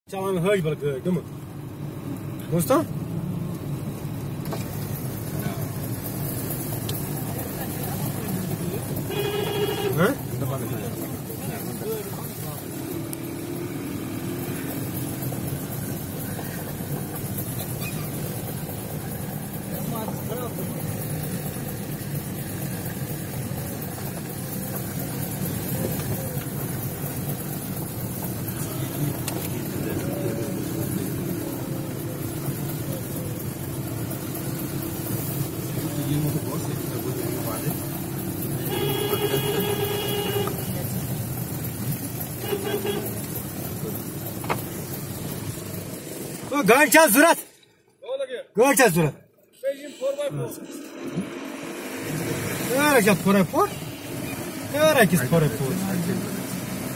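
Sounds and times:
car engine and road noise: 0:00.0 - 0:56.9.

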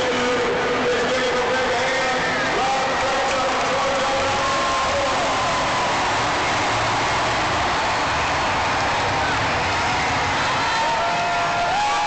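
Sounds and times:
diesel engines running: 0:00.0 - 0:11.5
stadium din: 0:00.0 - 0:12.0.

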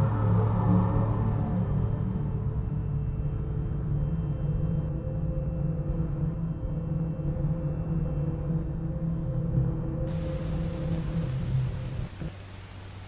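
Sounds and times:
low soundtrack music drone: 0:00.0 - 0:13.0.

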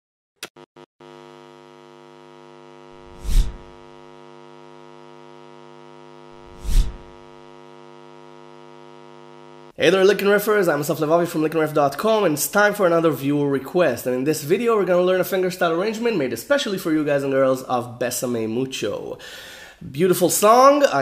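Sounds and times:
whooshes: 0:03.1 - 0:03.6, 0:06.5 - 0:07.0.

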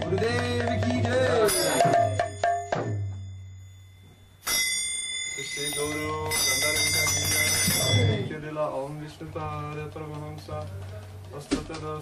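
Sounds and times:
small metal bell ringing: 0:01.4 - 0:08.3.

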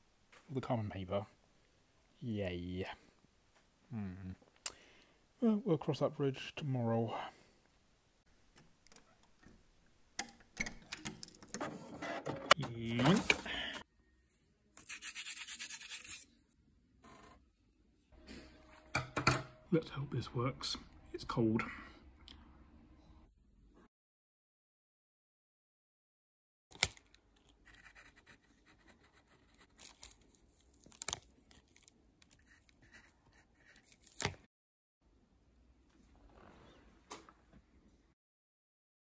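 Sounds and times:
pencil scratching on paper: 0:14.8 - 0:16.3, 0:27.6 - 0:29.8, 0:32.4 - 0:34.2.

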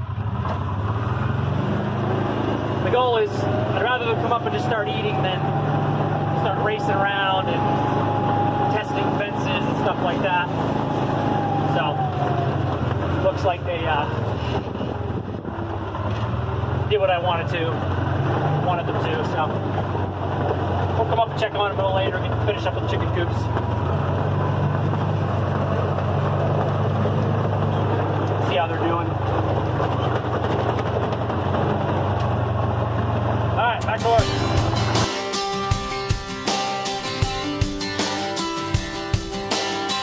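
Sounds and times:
vehicle engine running: 0:00.0 - 0:40.0
acoustic guitar music: 0:02.6 - 0:15.4, 0:33.5 - 0:40.0.

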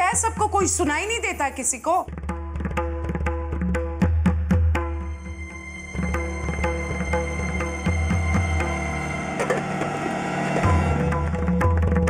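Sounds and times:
drum strikes: 0:02.1 - 0:12.0
dramatic music held tones: 0:04.9 - 0:12.0.

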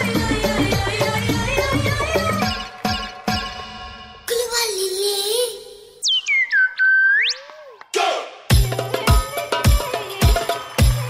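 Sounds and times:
electronic whistle chirps: 0:06.0 - 0:07.8.

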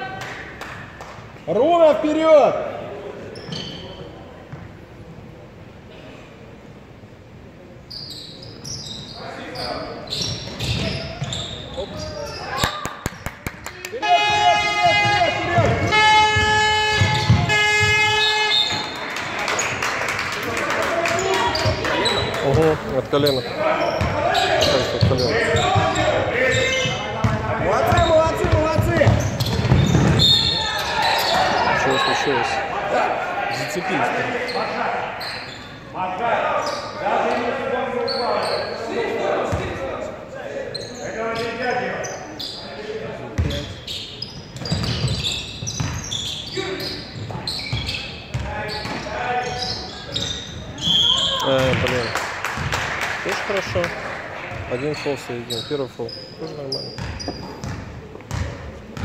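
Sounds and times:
voices calling out: 0:13.8 - 0:39.6
basketball bouncing on hardwood: 0:15.5 - 0:18.0, 0:27.2 - 0:30.2, 0:57.0 - 0:59.0.

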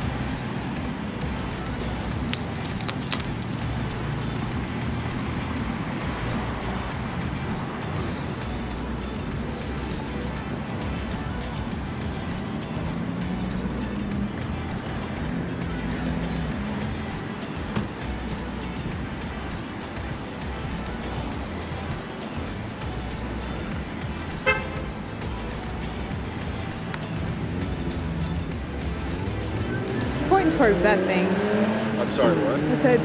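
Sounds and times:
low background music: 0:00.0 - 0:33.0
road traffic rumble: 0:00.0 - 0:33.0
car horn toot: 0:24.4 - 0:25.0.

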